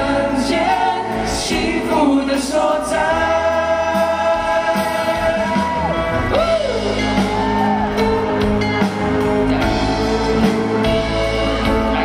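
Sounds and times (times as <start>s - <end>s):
male vocal group singing harmony: 0.0s - 7.5s.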